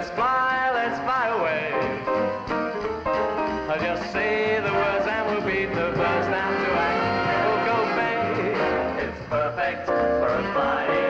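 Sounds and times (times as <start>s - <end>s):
grand piano played energetically: 0.0s - 11.0s
upbeat live band music: 0.0s - 11.0s.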